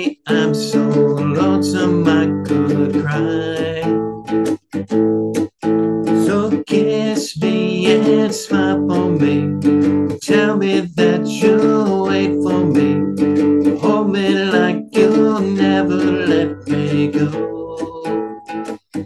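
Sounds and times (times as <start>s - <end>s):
cigar box guitar strummed: 0.0s - 19.0s.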